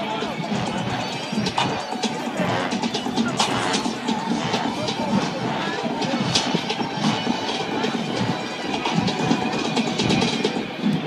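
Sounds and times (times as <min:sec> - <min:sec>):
crowd chatter: 0:00.0 - 0:11.0
drums beating steady rhythm: 0:00.0 - 0:11.0
marching band playing: 0:00.0 - 0:11.0.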